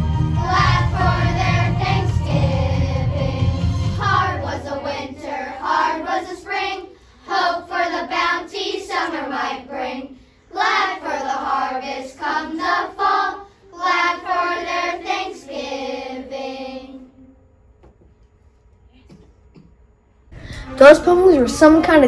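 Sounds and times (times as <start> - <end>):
low accompaniment notes: 0.0 - 5.2, 20.3 - 22.0
children's choir singing: 0.0 - 17.3.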